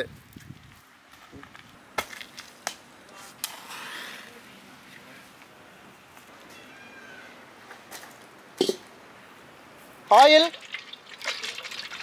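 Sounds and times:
quiet outdoor background noise: 0:00.0 - 0:12.0
high-pitched animal call: 0:06.5 - 0:07.5.

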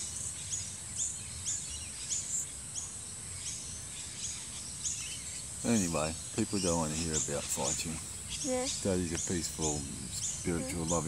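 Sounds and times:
faint steady background hiss: 0:00.0 - 0:11.0.

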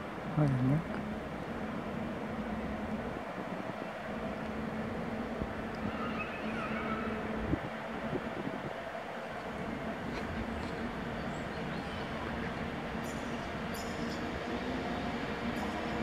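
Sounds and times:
distant train hum and rumble: 0:00.0 - 0:16.0.

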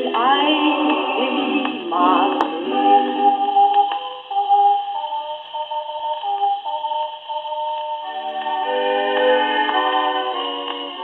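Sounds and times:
old record instrumental music: 0:00.0 - 0:11.0.

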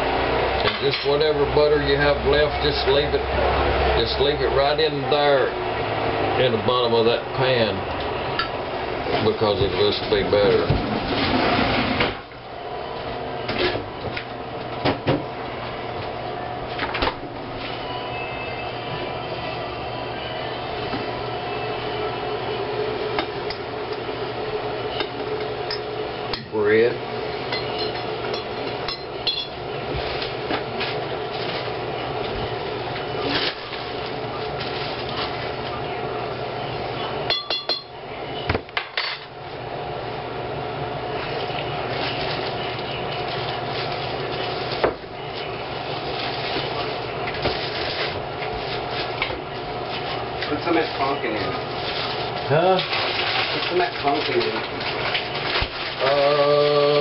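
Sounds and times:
steady kitchen hum: 0:00.0 - 0:57.0
dishes clinking against glass bowl: 0:27.5 - 0:29.6, 0:37.3 - 0:38.0.

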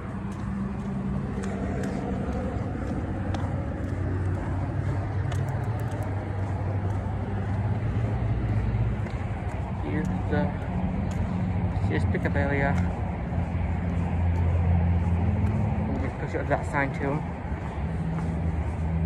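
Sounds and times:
distant road traffic: 0:00.0 - 0:19.0.

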